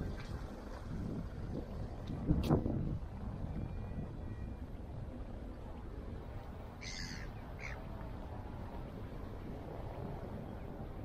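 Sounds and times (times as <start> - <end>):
wind rumble on microphone: 0.0 - 11.0
short bird calls: 6.8 - 7.8.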